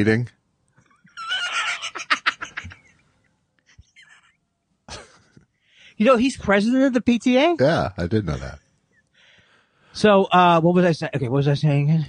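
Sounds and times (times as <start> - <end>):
man laughing: 1.2 - 3.0, 4.9 - 5.4.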